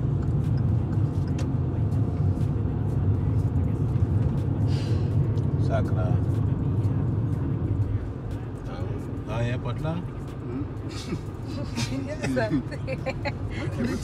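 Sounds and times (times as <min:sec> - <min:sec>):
car road and engine rumble: 0:00.0 - 0:14.0.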